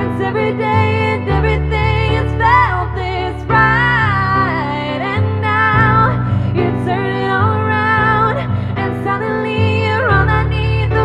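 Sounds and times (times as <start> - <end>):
keyboard piano chords: 0.0 - 11.0
woman singing pop ballad: 0.0 - 11.0.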